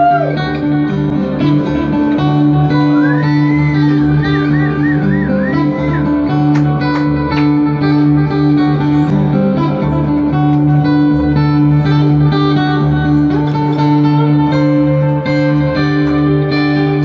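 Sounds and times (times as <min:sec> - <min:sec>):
acoustic guitar through pa: 0:00.0 - 0:17.0.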